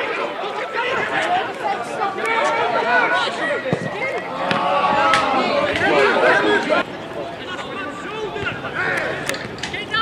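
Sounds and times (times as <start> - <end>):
people shouting and talking: 0.0 - 10.0.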